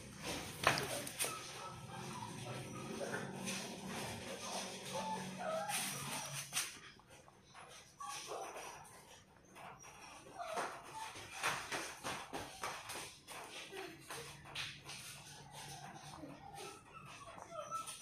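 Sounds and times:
rabbits chewing pellets: 0:00.0 - 0:18.0.

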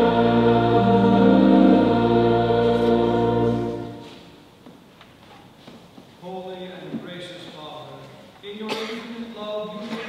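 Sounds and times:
church choir singing: 0:00.0 - 0:04.4.

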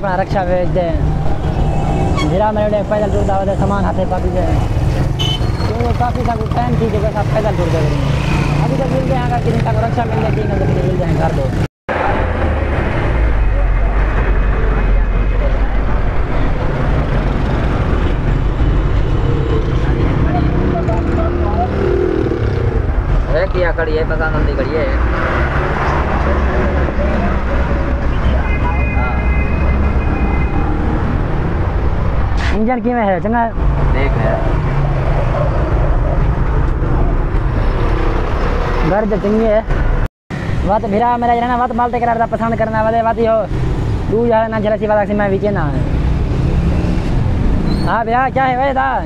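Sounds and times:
traffic engine rumble: 0:00.0 - 0:49.0.

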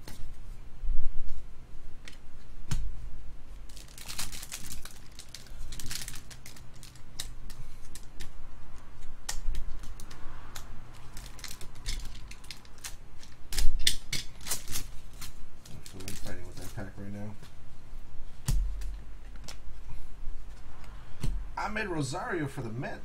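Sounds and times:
foil packs crinkling and tearing: 0:03.6 - 0:08.1, 0:10.9 - 0:17.4
cards flicked and shuffled: 0:03.6 - 0:17.5.

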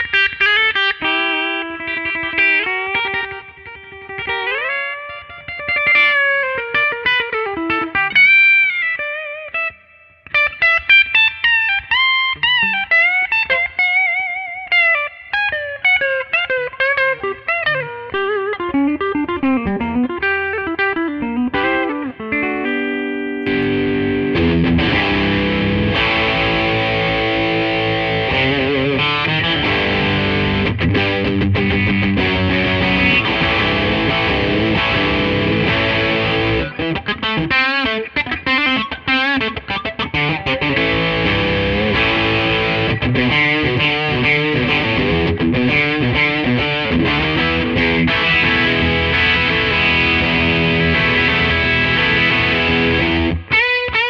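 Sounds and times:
distorted electric guitar: 0:00.0 - 0:54.0.

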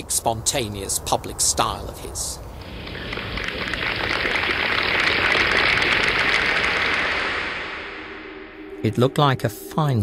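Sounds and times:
crowd applause: 0:02.6 - 0:08.0.

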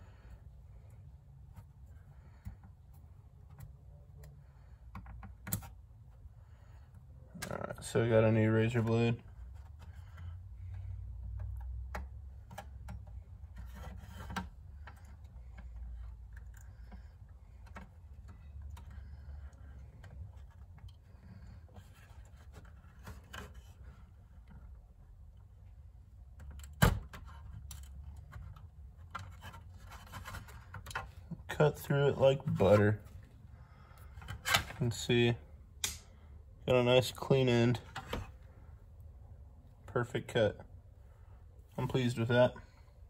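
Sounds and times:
low steady hum: 0:00.0 - 0:43.0.

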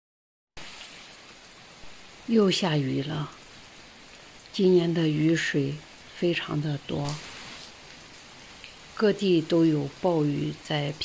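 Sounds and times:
steady rain: 0:00.6 - 0:11.0.

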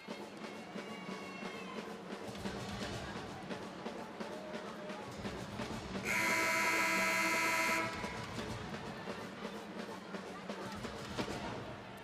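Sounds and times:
crowd noise: 0:00.0 - 0:12.0
arena horn buzzing blast: 0:06.1 - 0:08.1.

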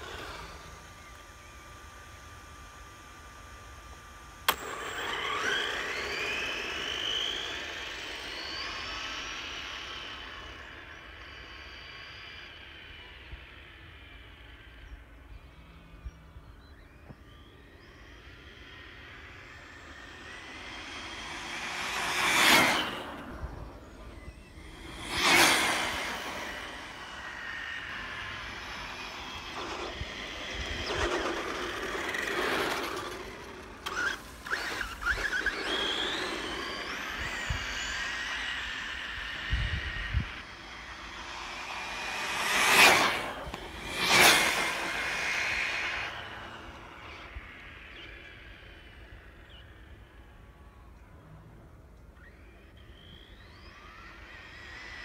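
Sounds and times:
rc car motor whine: 0:00.0 - 0:55.0.

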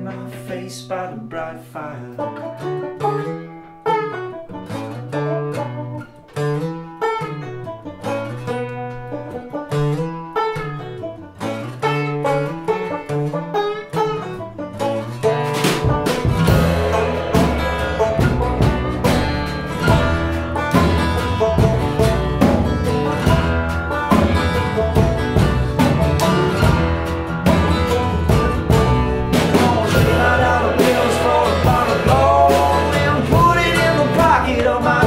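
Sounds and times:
person's voice: 0:00.0 - 0:02.2, 0:29.6 - 0:35.0
plucked upright bass: 0:00.0 - 0:35.0
strummed acoustic guitar: 0:00.0 - 0:35.0.

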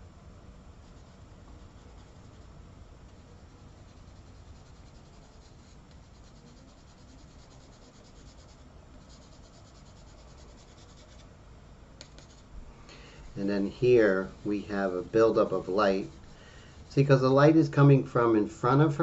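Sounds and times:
pastel scratching on paper: 0:00.8 - 0:02.5, 0:03.4 - 0:11.2, 0:12.0 - 0:12.5, 0:13.4 - 0:16.4.

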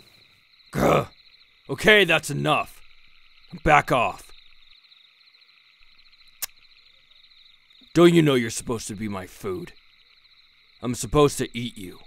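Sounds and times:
chorus of calling frogs: 0:00.0 - 0:12.0.

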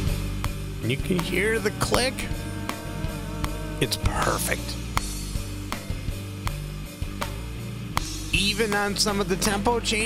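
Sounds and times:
song with guitar and drums: 0:00.0 - 0:10.0.

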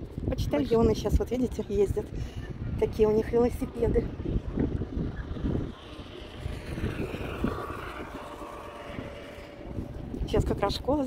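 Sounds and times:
wind buffeting microphone: 0:00.0 - 0:11.0
distant engine drone: 0:00.5 - 0:11.0
steady hum: 0:02.1 - 0:11.0.

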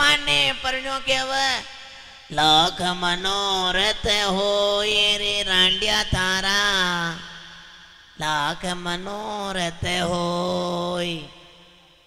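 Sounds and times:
man singing a held note: 0:00.0 - 0:12.0.

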